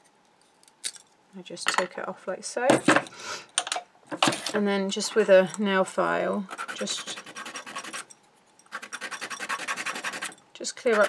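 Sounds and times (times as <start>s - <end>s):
nail file rasping on wood: 6.5s - 8.1s, 8.7s - 11.0s.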